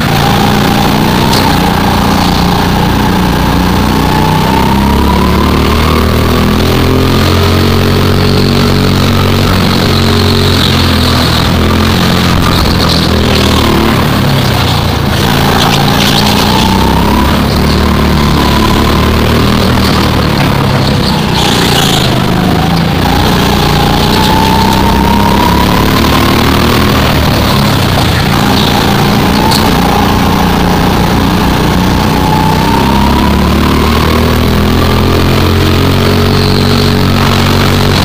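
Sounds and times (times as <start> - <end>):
go-kart engine running: 0.0 - 38.0.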